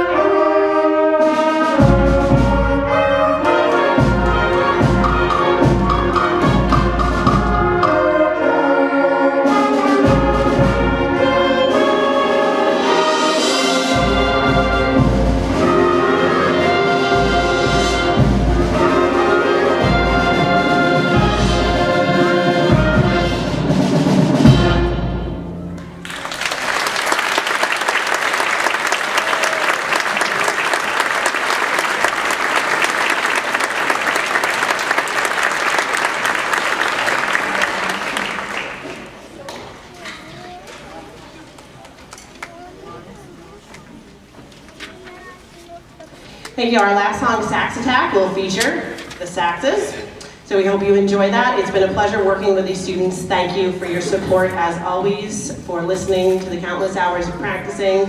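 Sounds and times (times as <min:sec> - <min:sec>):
concert band playing: 0:00.0 - 0:41.5
audience applauding: 0:26.0 - 0:40.0.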